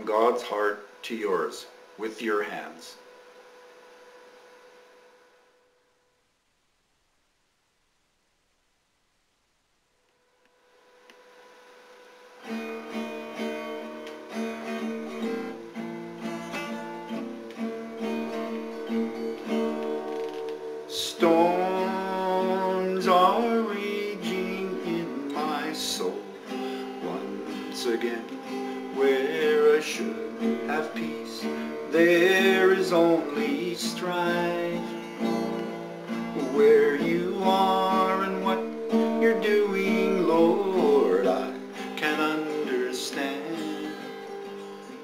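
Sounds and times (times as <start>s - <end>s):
acoustic guitar strummed: 0.0s - 5.2s, 11.7s - 45.0s
background hiss: 0.0s - 45.0s
faint electrical hum: 0.0s - 45.0s
man singing: 20.9s - 45.0s.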